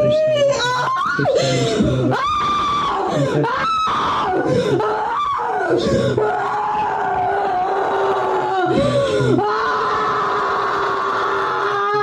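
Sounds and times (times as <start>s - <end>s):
woman screaming and wailing: 0.0s - 12.0s.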